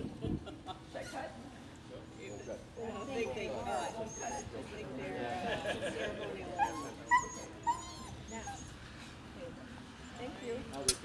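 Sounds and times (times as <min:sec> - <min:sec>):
crowd chatter: 0:01.0 - 0:11.0
dog yipping: 0:06.6 - 0:08.7.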